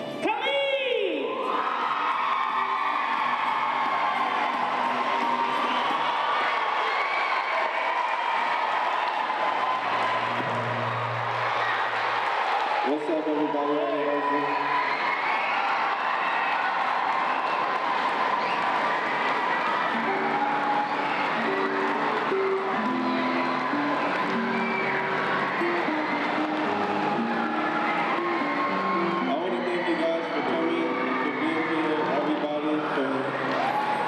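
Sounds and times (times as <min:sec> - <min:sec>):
children cheering and chattering: 0:01.4 - 0:34.0
music with held notes: 0:19.9 - 0:31.9.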